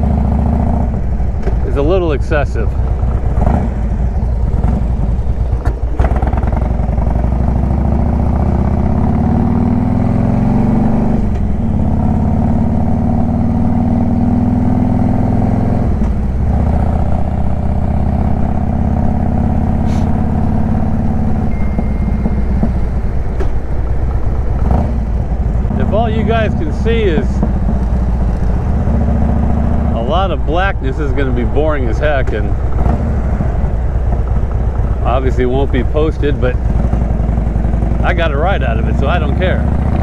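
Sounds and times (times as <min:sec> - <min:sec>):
motorcycle engine running: 0:00.0 - 0:40.0.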